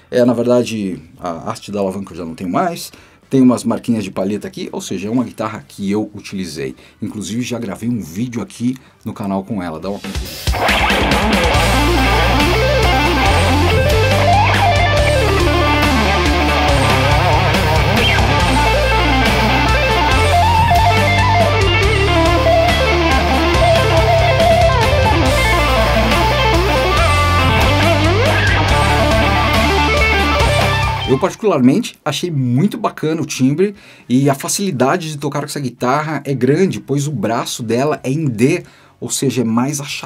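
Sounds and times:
electric guitar playing lead: 10.4 - 31.4
bass line: 10.5 - 31.3.

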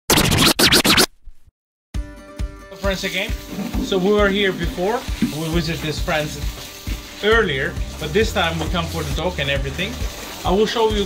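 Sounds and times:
record scratch sweeps: 0.0 - 1.4.

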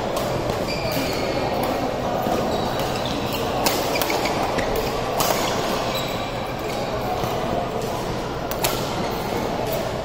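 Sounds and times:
steady hall noise: 0.0 - 10.0.

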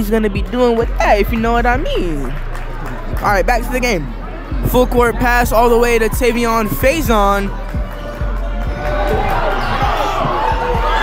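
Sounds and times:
background music: 0.0 - 11.0
crowd chatter: 0.0 - 11.0.

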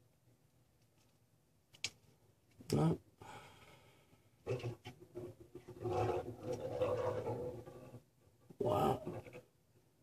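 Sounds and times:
peccaries growling: 5.6 - 9.5.

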